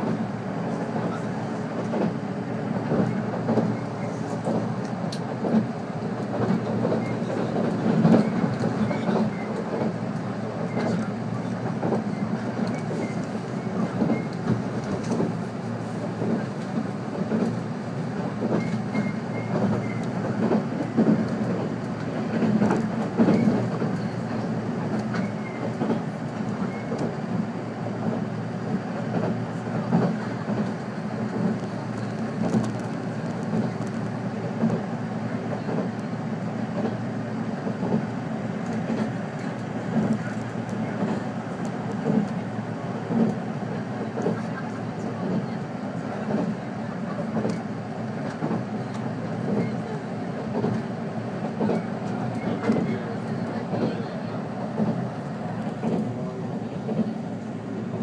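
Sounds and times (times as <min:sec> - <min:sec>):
train wheels rumbling on rail: 0:00.0 - 0:58.0.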